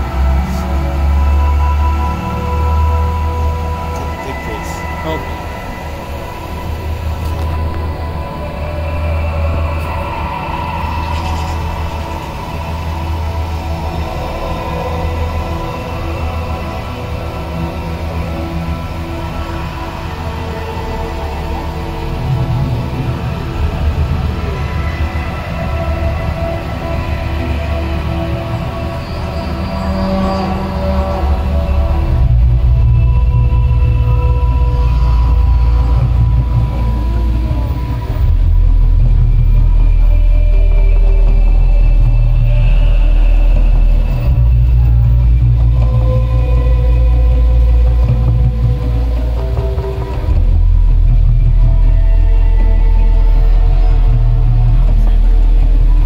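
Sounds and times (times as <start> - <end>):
deep rumble: 0.0 - 56.0
droning music over loudspeakers: 0.0 - 56.0
faint sustained tones: 0.0 - 56.0.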